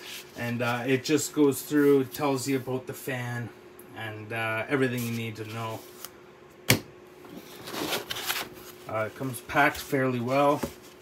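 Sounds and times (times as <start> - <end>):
foam insert rustling: 7.4 - 11.0.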